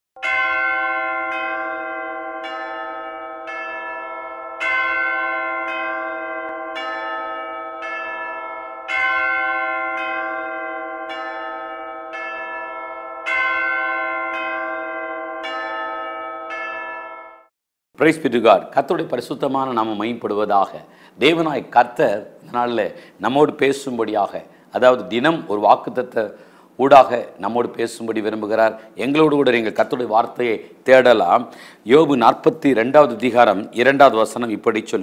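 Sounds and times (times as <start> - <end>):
bells ringing: 0.2 - 17.5
person speaking: 18.0 - 35.0.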